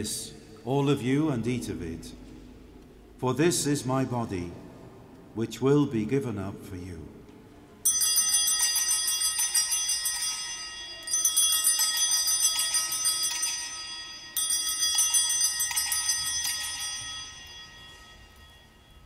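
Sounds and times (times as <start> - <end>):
small altar bells ringing: 7.8 - 19.0.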